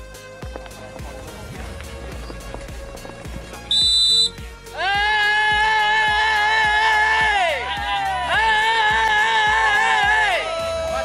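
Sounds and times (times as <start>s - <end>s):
background music with light beat: 0.0s - 11.0s
long steady pitched call: 3.6s - 4.4s
referee's whistle blast: 3.7s - 4.4s.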